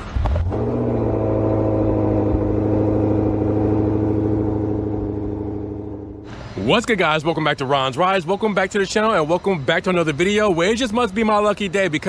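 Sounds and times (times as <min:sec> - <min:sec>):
car engine starting and idling: 0:00.0 - 0:09.1.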